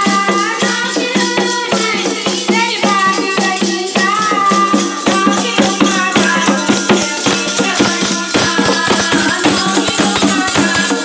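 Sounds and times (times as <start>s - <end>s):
rattle shaker: 0.0s - 11.0s
women singing folk song: 0.0s - 11.0s.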